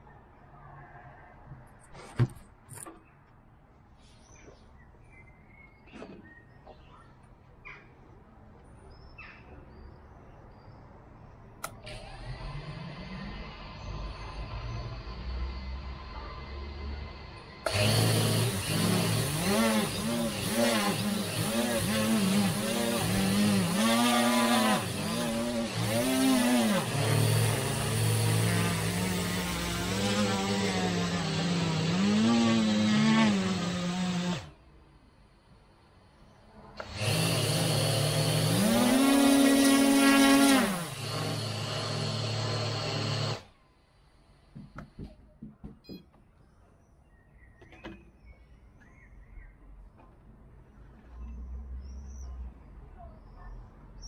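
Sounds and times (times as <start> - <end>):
quadcopter motors spinning: 16.5 - 34.5.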